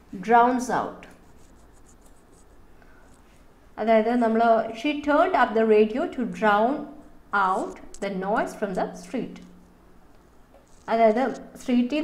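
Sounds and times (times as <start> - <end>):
computer mouse clicks and scratching: 1.0 - 3.3, 7.6 - 8.1, 10.2 - 11.6.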